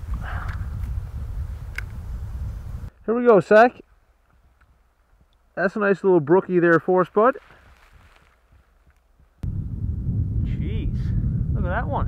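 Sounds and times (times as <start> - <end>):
wind buffeting microphone: 0.0 - 3.0, 7.9 - 12.0.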